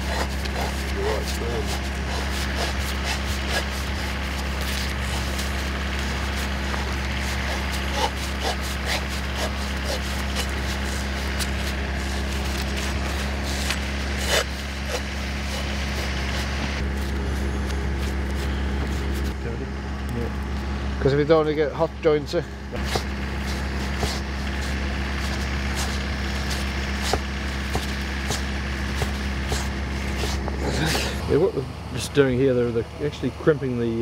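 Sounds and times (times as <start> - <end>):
engine humming: 0.0 - 34.0.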